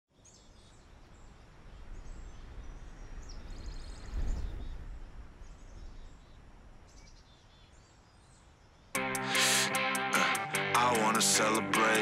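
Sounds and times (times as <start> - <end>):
birds chirping: 0.1 - 12.0.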